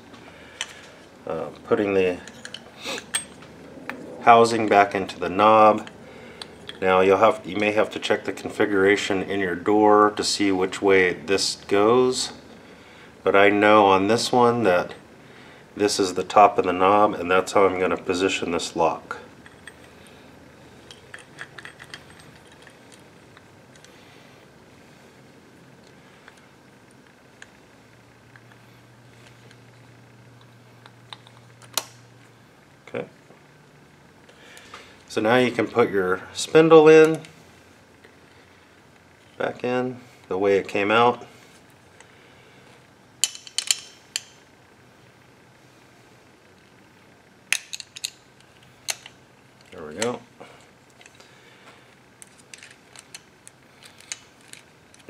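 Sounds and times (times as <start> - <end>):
metal lock parts clicking: 2.2 - 3.4, 20.8 - 23.9, 43.2 - 44.4, 47.5 - 50.2, 52.2 - 55.0.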